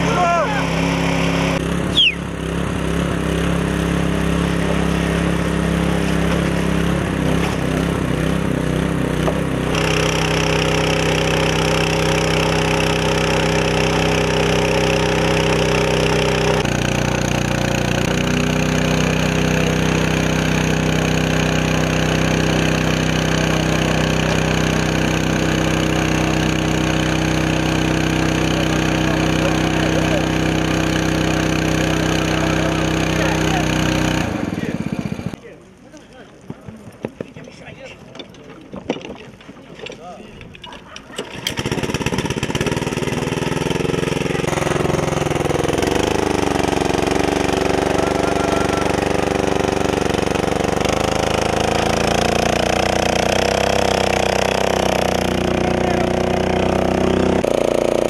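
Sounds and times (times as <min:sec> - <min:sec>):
small petrol pump engine running: 0:00.0 - 0:35.4, 0:40.4 - 0:58.0.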